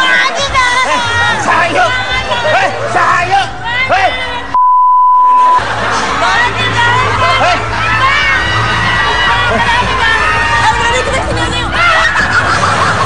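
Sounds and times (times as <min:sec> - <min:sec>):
excited shouting voices: 0:00.0 - 0:04.6, 0:05.6 - 0:13.0
electronic beep: 0:04.6 - 0:05.6
background music: 0:05.2 - 0:13.0.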